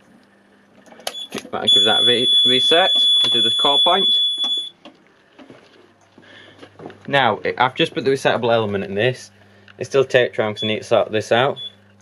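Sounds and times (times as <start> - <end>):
fire alarm electronic tone: 1.1 - 4.8, 11.4 - 11.8.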